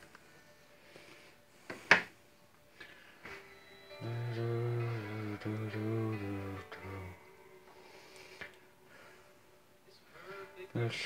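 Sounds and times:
man singing a wavering note: 3.9 - 7.6.

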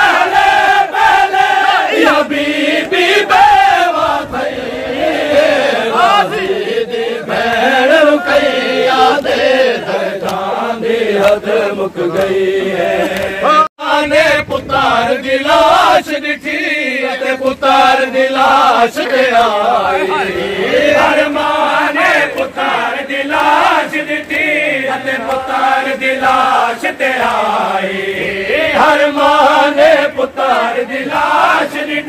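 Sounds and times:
men chanting a lament: 0.0 - 32.0.

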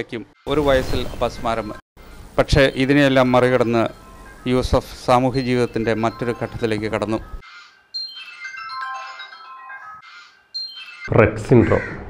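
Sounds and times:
bell-like melody: 2.6 - 11.2.

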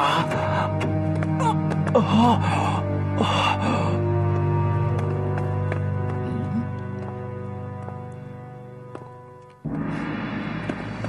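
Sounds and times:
person gasping and crying out: 0.0 - 4.1
tense film score: 0.0 - 11.0.

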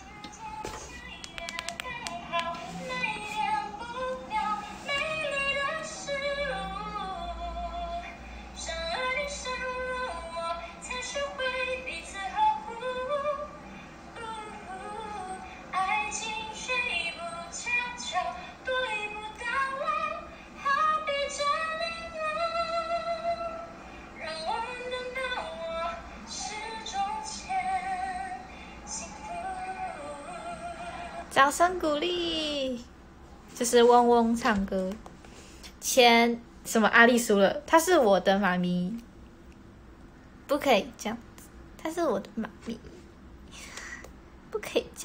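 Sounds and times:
woman singing slow melody: 0.0 - 32.9.

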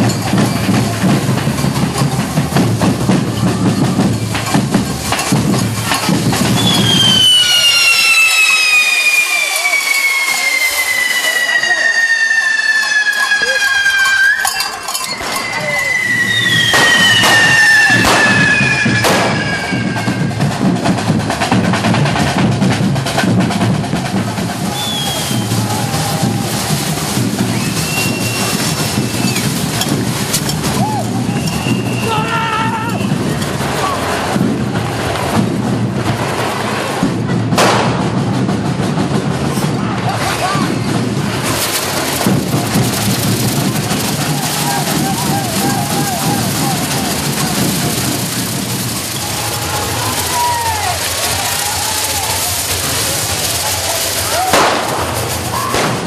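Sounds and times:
loud percussive music: 0.0 - 8.2, 13.7 - 56.0
firework cracks: 0.0 - 56.0
whistling fireworks: 0.0 - 56.0
falling firework whistle: 6.3 - 20.6, 24.4 - 34.0, 41.5 - 56.0.

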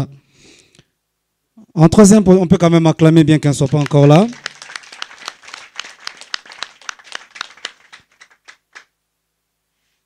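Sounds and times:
audience applauding: 3.5 - 8.9.

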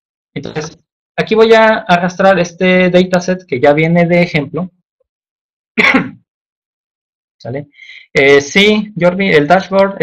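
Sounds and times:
man clearing throat cough: 5.8 - 6.3.

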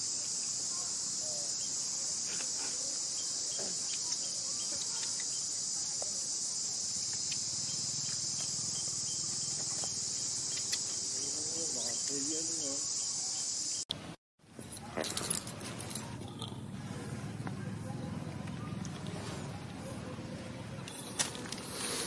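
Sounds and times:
insects droning: 0.0 - 13.8.

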